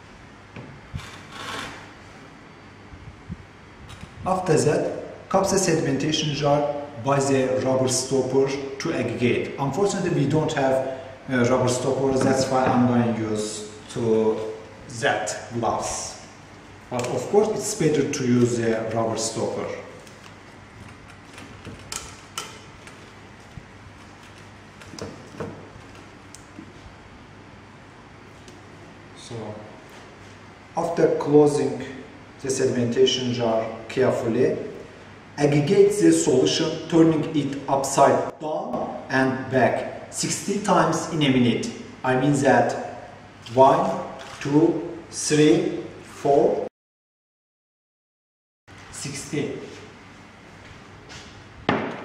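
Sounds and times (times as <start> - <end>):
low room hum: 0.0 - 46.7.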